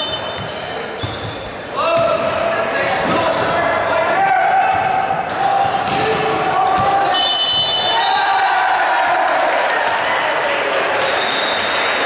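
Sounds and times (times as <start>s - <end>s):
volleyball hits: 4.8s - 7.9s.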